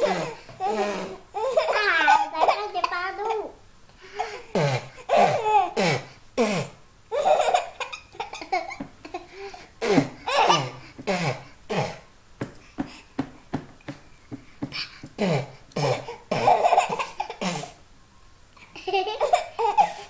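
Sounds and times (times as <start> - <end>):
baby laughing: 0.0 - 3.5, 4.2 - 5.8, 7.1 - 10.9, 15.8 - 17.8, 18.6 - 20.0.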